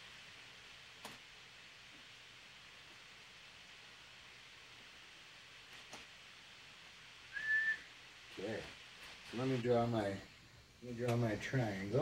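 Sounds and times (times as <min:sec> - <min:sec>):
faint room hiss: 0:00.0 - 0:12.0
high-pitched whistle-like tone: 0:07.3 - 0:07.9.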